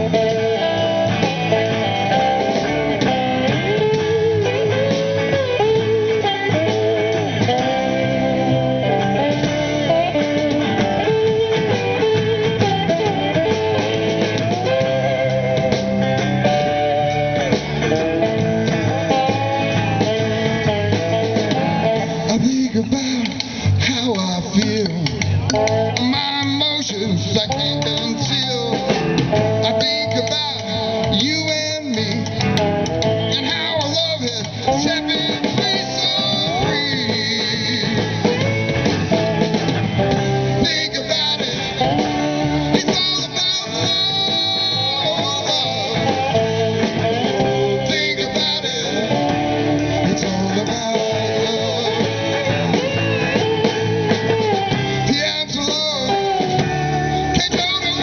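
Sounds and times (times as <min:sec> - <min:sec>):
drum kit: 0:00.0 - 0:58.0
electric bass: 0:00.0 - 0:58.0
electric guitars: 0:00.0 - 0:58.0.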